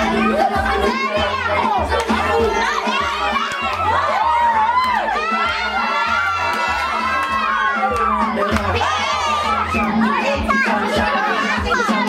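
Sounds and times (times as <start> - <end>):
children shouting and cheering: 0.0 - 12.0
dance music with bass beat: 0.0 - 12.0.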